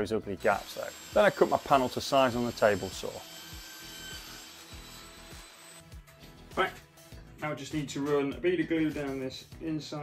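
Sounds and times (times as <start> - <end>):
background music: 0.0 - 10.0
table saw cutting plywood: 0.5 - 6.0.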